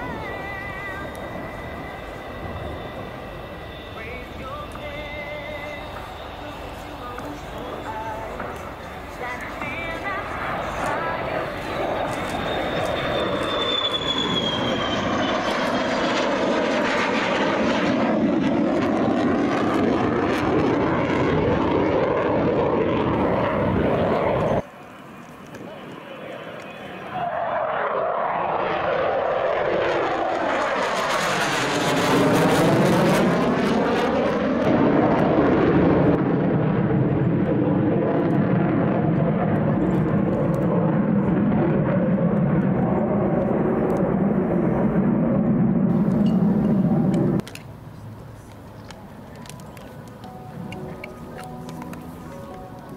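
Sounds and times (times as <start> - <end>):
fighter jet engine roaring: 0.0 - 52.9.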